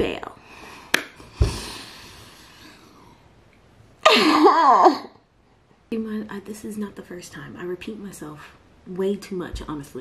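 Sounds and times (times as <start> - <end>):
woman laughing into her hands: 4.0 - 5.1.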